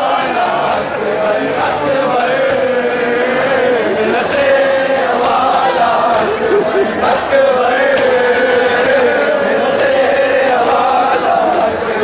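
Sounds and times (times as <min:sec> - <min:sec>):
crowd chanting in unison: 0:00.0 - 0:12.0.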